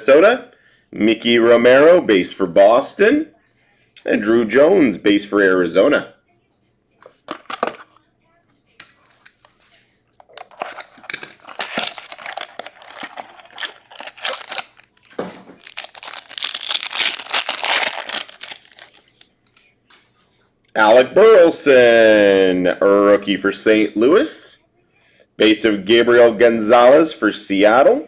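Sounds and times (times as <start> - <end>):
shrink wrap crinkling and tearing: 10.3 - 19.4.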